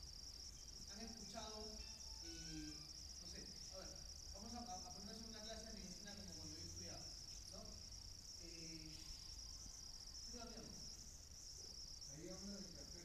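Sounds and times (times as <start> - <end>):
high-pitched whine: 0.0 - 7.8
faint echoing voice speaking: 12.0 - 13.0.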